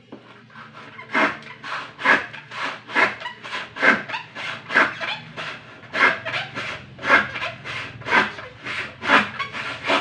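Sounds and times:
handsaw cutting wood: 0.5s - 10.0s.

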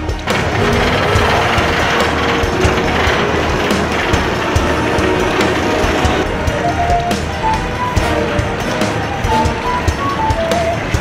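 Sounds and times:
roller coaster rattling on track: 0.0s - 11.0s.

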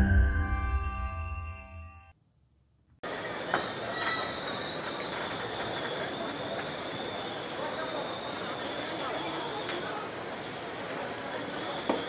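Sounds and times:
faint high squealing tones: 3.5s - 9.6s.

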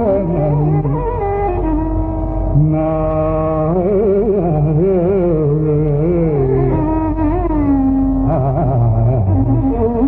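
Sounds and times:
man singing: 0.0s - 1.0s, 2.5s - 10.0s.

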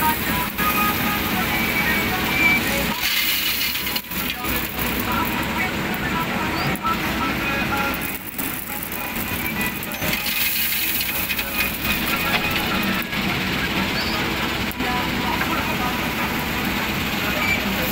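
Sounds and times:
diesel engine running: 0.0s - 17.9s.

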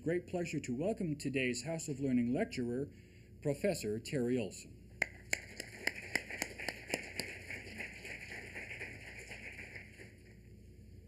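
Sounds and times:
audience applauding: 5.0s - 10.3s.

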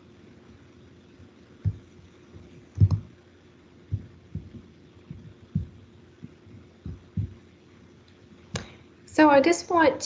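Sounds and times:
faint steady hum: 0.0s - 10.0s
muffled low thuds: 1.6s - 3.2s, 3.9s - 7.4s.

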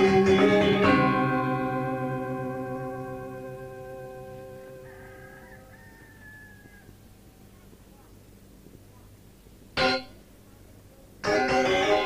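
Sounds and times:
faint drawn-out call: 4.7s - 9.3s.

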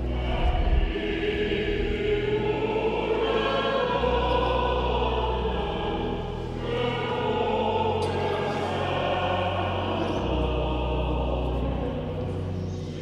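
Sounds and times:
congregation singing a hymn: 0.0s - 13.0s.

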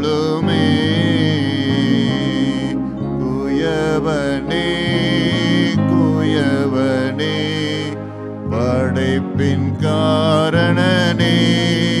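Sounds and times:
held instrumental chords: 0.0s - 12.0s
man singing: 0.0s - 12.0s.

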